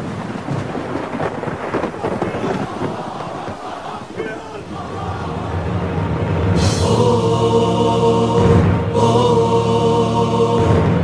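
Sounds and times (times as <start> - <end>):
rumbling crackling storm noise: 0.0 - 11.0.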